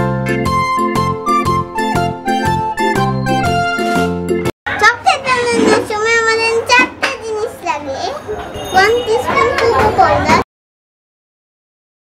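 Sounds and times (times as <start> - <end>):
girl talking: 4.7 - 10.4.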